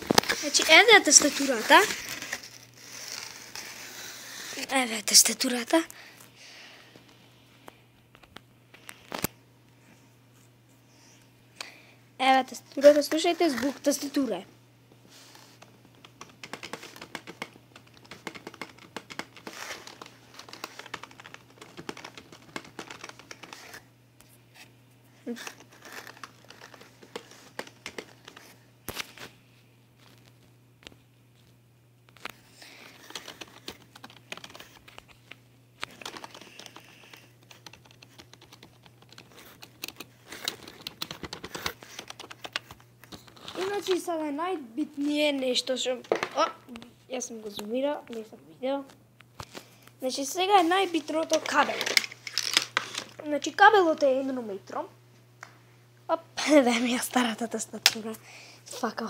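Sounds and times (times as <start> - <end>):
plastic film crinkling: 0.0 - 4.8, 15.2 - 23.9, 25.3 - 29.3, 50.5 - 53.2
keyboard keys clicking: 16.0 - 23.7, 35.9 - 42.7.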